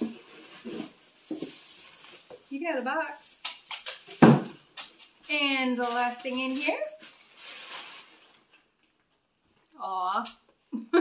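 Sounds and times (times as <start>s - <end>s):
tissue paper rustling: 0.0s - 8.9s.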